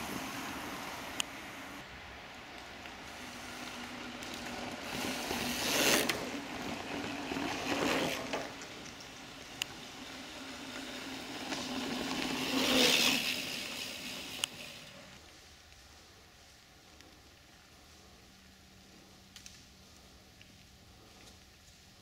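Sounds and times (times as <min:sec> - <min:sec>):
bike tyres on loose dirt and leaves: 0:00.0 - 0:22.0
sharp clicks from bikes: 0:00.0 - 0:22.0.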